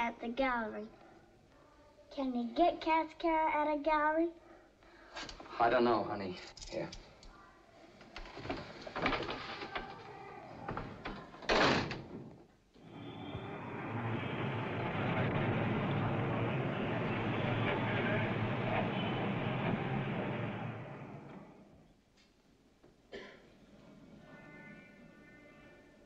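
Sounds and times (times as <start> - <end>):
city street traffic: 12.8 - 21.2.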